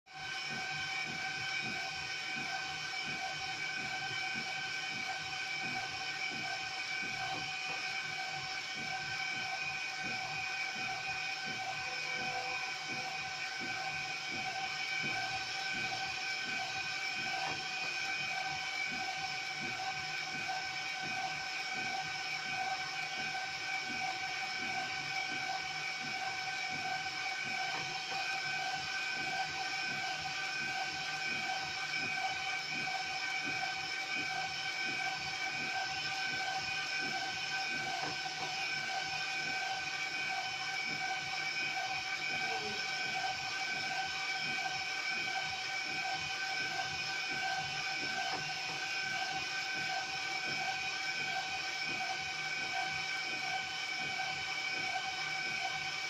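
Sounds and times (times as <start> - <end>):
printer whine and motor hiss: 0.2 - 56.0.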